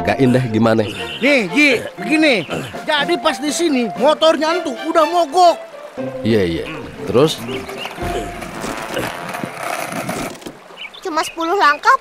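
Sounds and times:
wheels knocking on boards: 6.9 - 10.8
skate wheels rolling on wood: 7.3 - 10.9.

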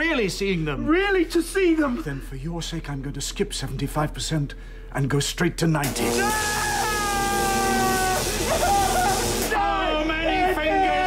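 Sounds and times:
steady high hiss: 5.8 - 10.4.

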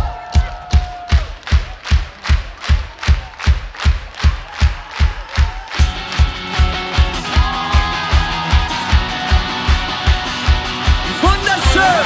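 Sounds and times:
crowd noise: 0.0 - 12.0
drum beat: 0.0 - 12.0
full band playing: 5.7 - 12.0.

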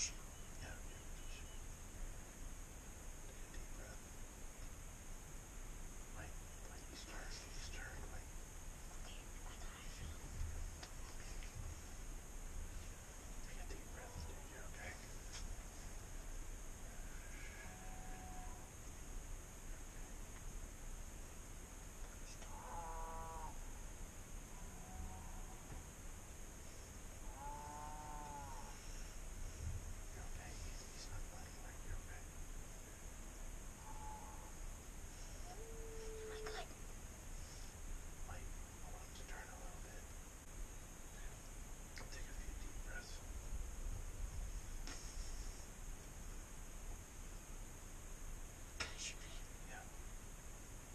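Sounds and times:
hushed whispering voices: 0.0 - 1.7, 3.3 - 4.0, 6.1 - 11.9, 13.3 - 16.1, 22.0 - 22.6, 30.1 - 32.3, 35.2 - 36.8, 37.4 - 40.1, 41.1 - 43.3, 48.8 - 50.0
background hiss: 0.0 - 50.9.

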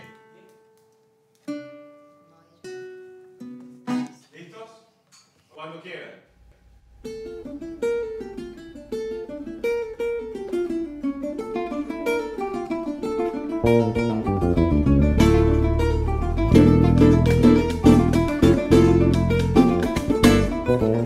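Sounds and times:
plucked string melody: 7.0 - 21.0
strummed string chords: 7.2 - 21.0
electric bass low notes: 13.5 - 21.0.

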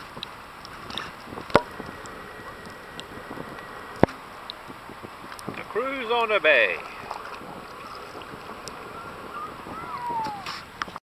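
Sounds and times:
small waves lapping: 0.0 - 11.0
wind rushing over microphone: 0.0 - 11.0.

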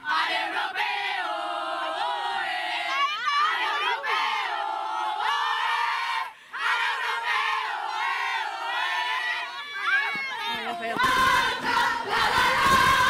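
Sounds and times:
women shouting and cheering: 2.8 - 13.0.

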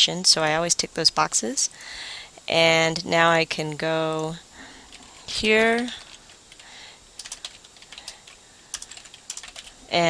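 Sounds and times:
computer keyboard typing: 4.9 - 9.8.

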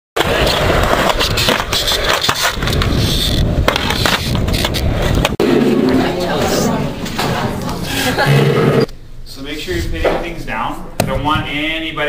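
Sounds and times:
skateboard clicks and knocks: 0.2 - 5.4
skateboard wheels rolling on concrete: 0.2 - 8.9.

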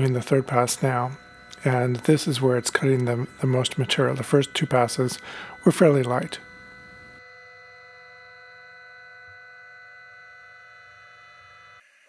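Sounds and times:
milling machine whine: 0.0 - 11.8.

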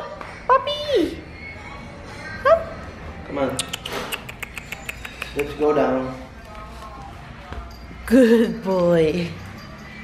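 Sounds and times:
puppy paws on marble stairs: 3.6 - 10.0.

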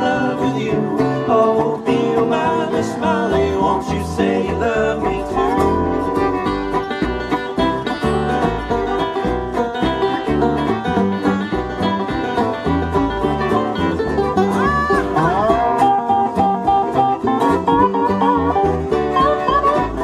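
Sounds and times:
bluegrass band playing: 0.0 - 20.0
fast banjo picking: 0.0 - 20.0
sliding melody of held notes: 10.0 - 20.0.

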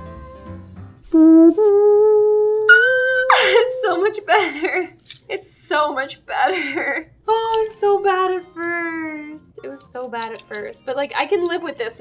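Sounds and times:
soft background music: 3.4 - 12.0.

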